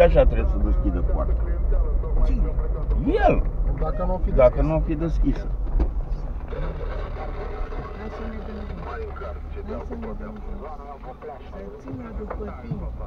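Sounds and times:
car engine and road rumble: 0:00.0 - 0:13.0
quiet voices: 0:00.0 - 0:13.0.

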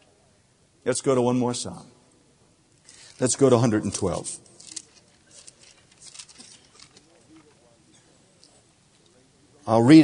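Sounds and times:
pages turning rustle: 0:02.9 - 0:07.5.

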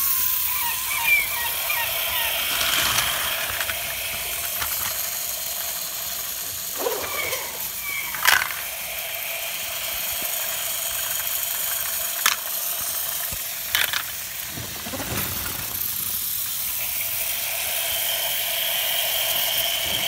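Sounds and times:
whir of toy train motors: 0:00.0 - 0:20.0.

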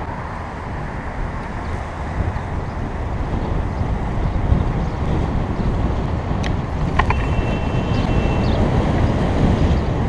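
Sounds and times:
bicycle road rumble: 0:00.0 - 0:10.0
car traffic noise: 0:00.0 - 0:10.0
wind noise: 0:00.0 - 0:10.0.

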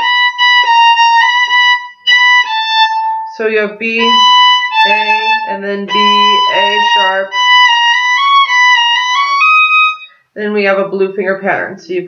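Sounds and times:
solo violin playing slow notes: 0:00.0 - 0:10.2.

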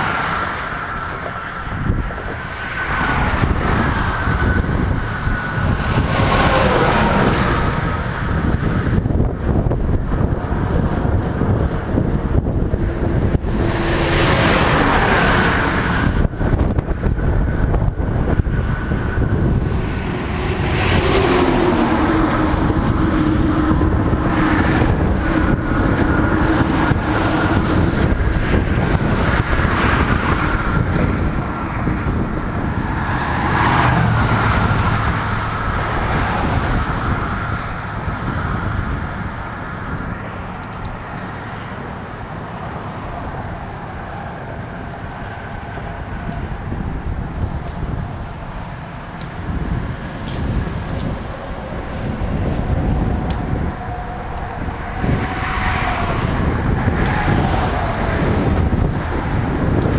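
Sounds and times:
cars and trucks passing: 0:00.0 - 0:59.9
wind buffeting microphone: 0:00.0 - 0:59.9.

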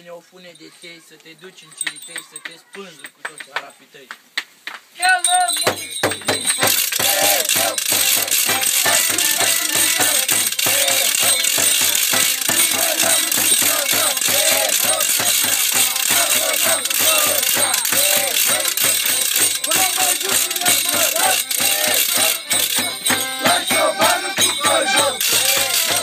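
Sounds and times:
fast percussion beat: 0:05.1 - 0:26.0
rattling and clacking: 0:05.5 - 0:26.0.

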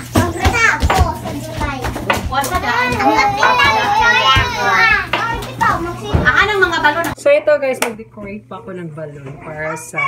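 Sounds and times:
children chattering and calling out: 0:00.0 - 0:07.2, 0:09.4 - 0:10.0.

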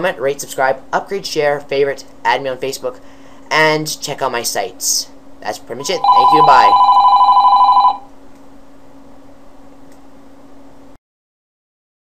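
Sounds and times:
faint low hum: 0:00.0 - 0:08.1
electronic ringer warbling: 0:05.8 - 0:08.1.

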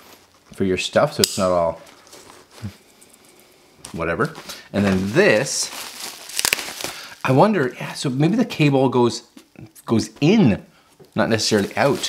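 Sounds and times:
fabric rustling: 0:01.8 - 0:07.2, 0:11.3 - 0:12.0.

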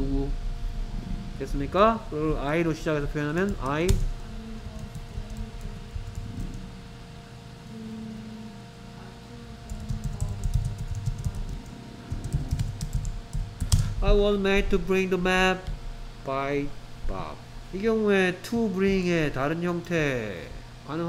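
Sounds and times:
typing on computer keyboard: 0:09.7 - 0:13.9.

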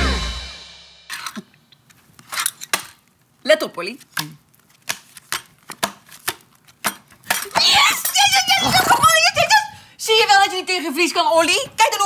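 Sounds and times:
music: 0:00.0 - 0:01.1.

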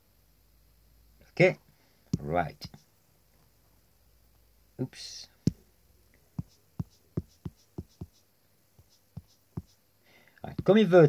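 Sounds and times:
stylus tapping on glass screen: 0:06.4 - 0:08.2.

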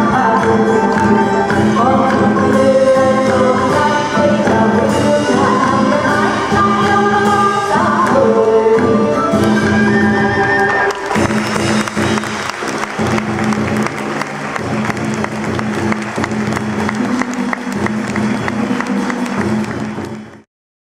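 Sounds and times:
live traditional band music: 0:00.0 - 0:20.4
audience applause: 0:10.7 - 0:20.4.

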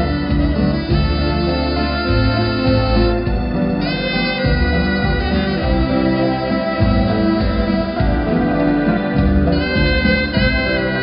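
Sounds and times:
backing track with bass line: 0:00.0 - 0:11.0
saxophone melody: 0:00.0 - 0:11.0.

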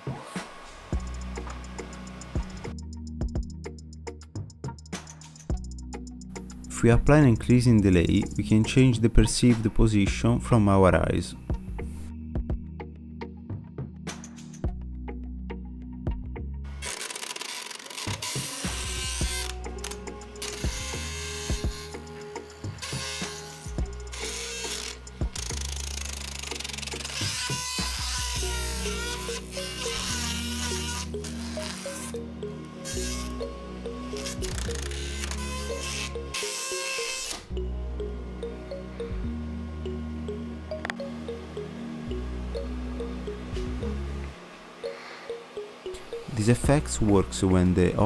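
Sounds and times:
background music with bass: 0:00.9 - 0:16.9, 0:18.1 - 0:48.0
fan blades slapping paper strip: 0:16.8 - 0:19.9.

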